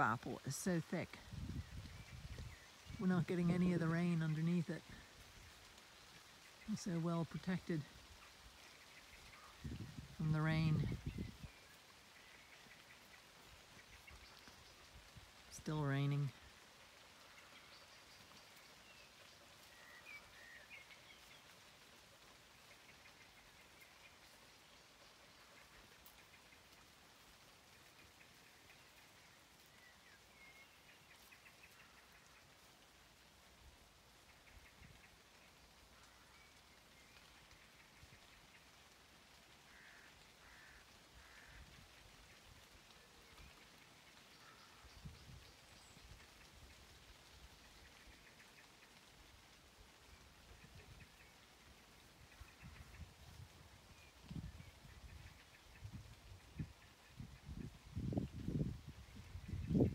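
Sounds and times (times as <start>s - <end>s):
light rain hiss: 0.0s - 59.9s.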